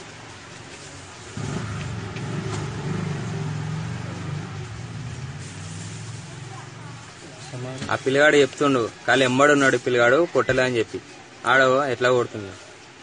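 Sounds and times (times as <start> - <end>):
vehicle engine humming: 0.0 - 8.9.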